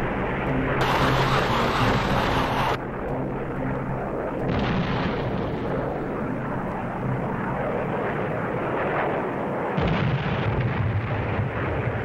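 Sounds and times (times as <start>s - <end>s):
jet aircraft drone: 0.0s - 9.8s.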